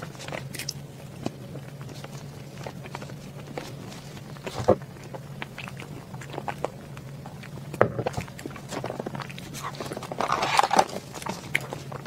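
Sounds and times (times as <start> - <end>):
chewing with wet mouth clicks: 0.0 - 12.0.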